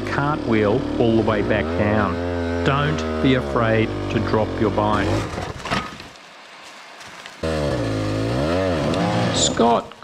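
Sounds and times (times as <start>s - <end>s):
dirt bike engine revving: 0.0s - 6.0s, 7.3s - 10.0s.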